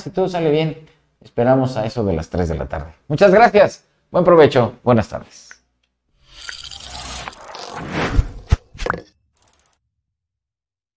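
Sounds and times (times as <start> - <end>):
short swish: 7.0 - 8.8.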